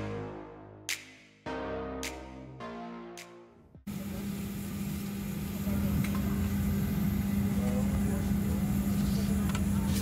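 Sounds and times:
airplane cabin drone: 3.9s - 10.0s.

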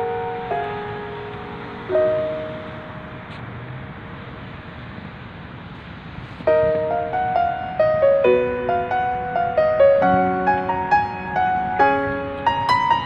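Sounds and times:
soft piano music: 0.0s - 3.4s, 6.4s - 13.0s.

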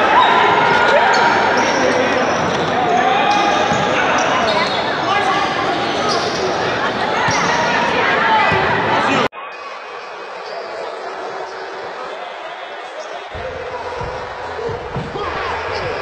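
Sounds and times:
players shouting: 10.9s - 16.0s
ball struck and bouncing: 13.4s - 16.0s.

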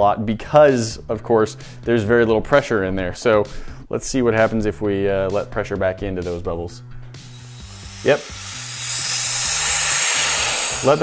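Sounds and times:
air hissing into vacuum chamber: 7.2s - 11.0s.

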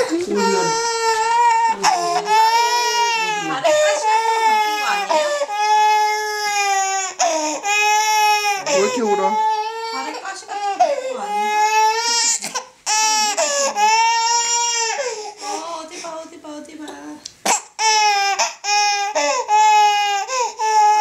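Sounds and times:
baby crying hard: 0.0s - 15.6s, 17.5s - 21.0s.

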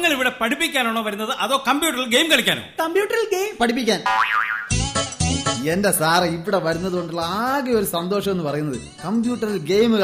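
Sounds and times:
cartoon spring boing: 4.1s - 4.8s.

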